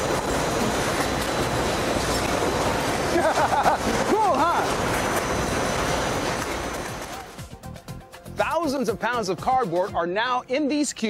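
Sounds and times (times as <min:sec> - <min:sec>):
conveyor and machinery running: 0:00.0 - 0:07.6.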